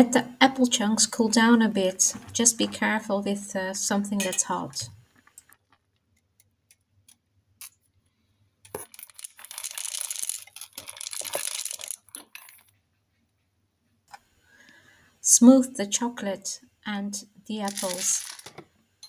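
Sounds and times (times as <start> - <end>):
chocolate drops pouring into cup: 8.7 - 12.6, 17.7 - 18.5.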